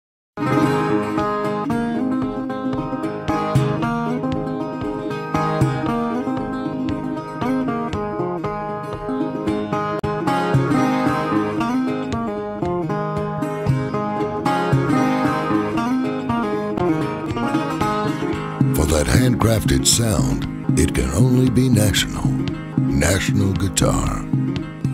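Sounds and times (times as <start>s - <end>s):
fingerpicked resonator guitar: 0.4s - 24.9s.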